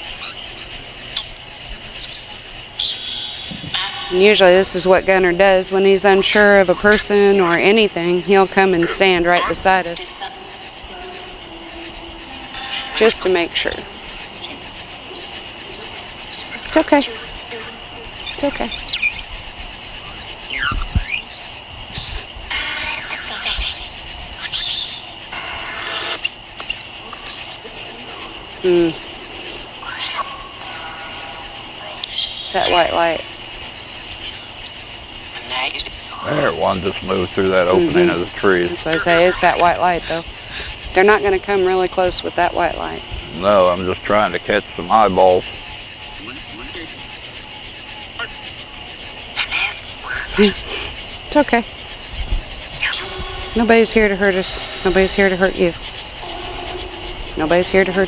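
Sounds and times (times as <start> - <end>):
crickets and insects chirping: 0.0 - 58.0
squeaky glides: 8.6 - 19.3, 52.8 - 58.0.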